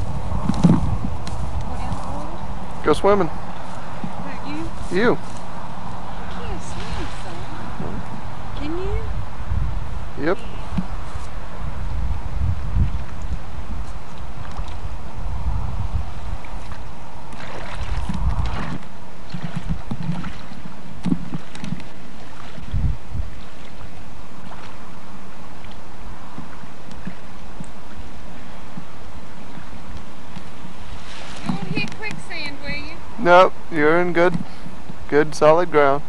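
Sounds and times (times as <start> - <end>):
shoreline noise hiss: 0.0 - 36.0
wind buffeting microphone: 0.0 - 36.0.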